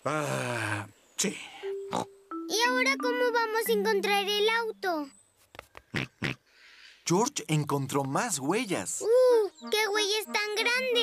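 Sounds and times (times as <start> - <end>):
cartoon pig snorts: 5.9 - 6.4.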